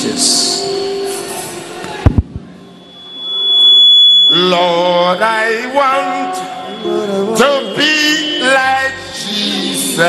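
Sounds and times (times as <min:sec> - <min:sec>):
high-pitched feedback tone: 0:02.5 - 0:10.0.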